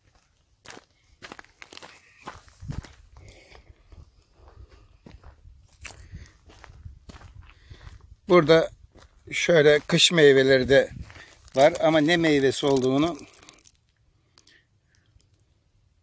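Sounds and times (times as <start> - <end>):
footsteps on gravel: 0.0 - 13.8.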